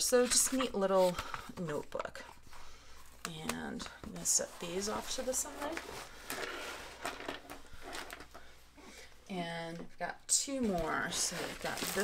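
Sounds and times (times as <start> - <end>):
packaging rustling: 10.8 - 12.0.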